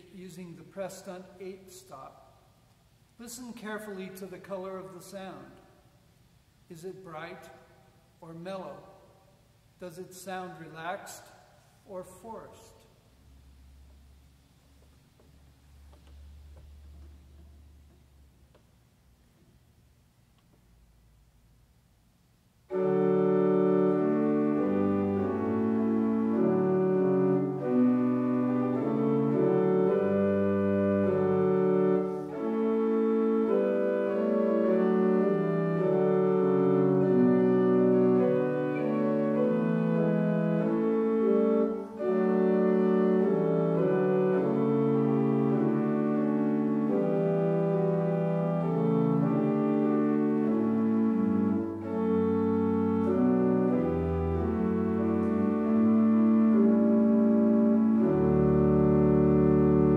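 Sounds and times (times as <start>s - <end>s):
pipe organ playing a hymn: 0.0s - 2.3s, 3.2s - 5.8s, 6.7s - 9.1s, 9.8s - 11.3s, 22.6s - 59.9s.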